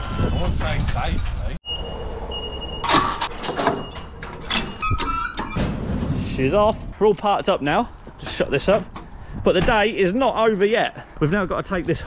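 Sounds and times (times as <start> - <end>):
heavy chain clanking on steel: 2.8 - 5.6
sharp metallic clinks: 2.8 - 5.6.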